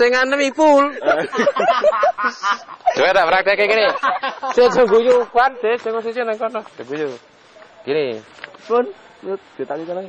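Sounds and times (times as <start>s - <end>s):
person laughing: 1.0s - 3.1s.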